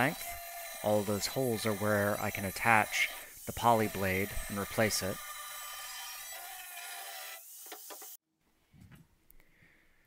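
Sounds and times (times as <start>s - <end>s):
angle grinder cutting steel: 0.0s - 8.2s.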